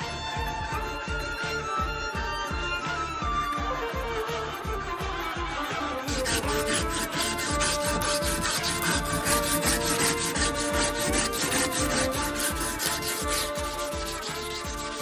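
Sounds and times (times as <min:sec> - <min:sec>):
background music: 0:00.0 - 0:15.0
strip rasping through steel ring: 0:04.5 - 0:15.0.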